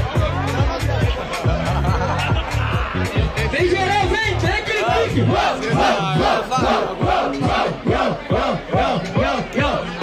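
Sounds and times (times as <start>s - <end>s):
crowd chanting: 4.7s - 10.0s.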